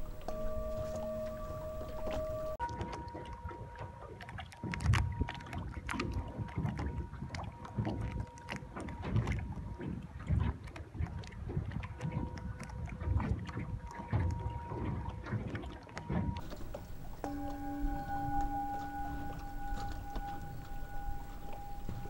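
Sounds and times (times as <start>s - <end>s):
wind buffeting microphone: 0.0s - 2.6s, 16.2s - 22.0s
singing bowl ringing tone: 0.0s - 4.1s, 16.4s - 22.0s
water noise: 0.0s - 22.0s.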